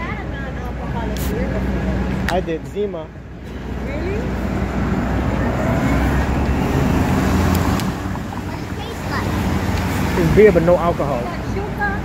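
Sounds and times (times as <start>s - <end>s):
city street traffic: 0.0s - 12.0s
passing vehicle rumble: 0.0s - 12.0s.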